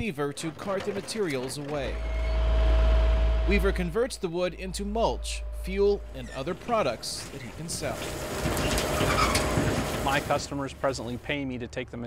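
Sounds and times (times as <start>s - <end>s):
processing machinery running: 0.3s - 11.2s
faint steady hum: 1.7s - 11.3s
wood chips pouring into metal hopper: 6.7s - 11.1s.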